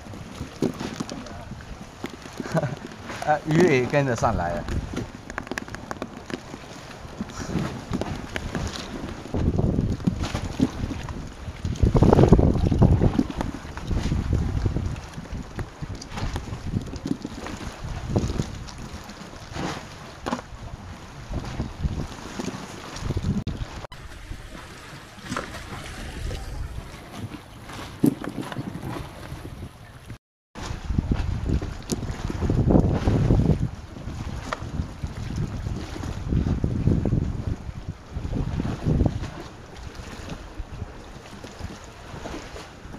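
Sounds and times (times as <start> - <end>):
sea water sloshing: 0.0 - 42.9
wind buffeting microphone: 0.0 - 42.9
small clicks and knocks: 5.2 - 6.5.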